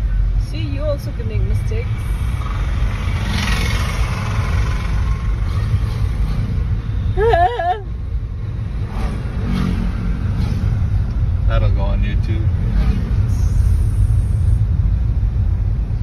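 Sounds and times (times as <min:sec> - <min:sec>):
engine and road noise inside car: 0:00.0 - 0:16.0.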